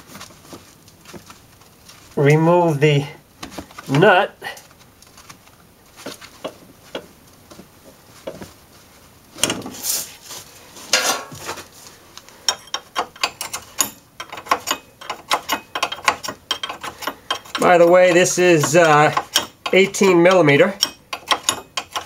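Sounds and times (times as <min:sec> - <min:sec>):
handling noises: 0:00.0 - 0:22.0
hand ratchet clicking: 0:12.5 - 0:22.0.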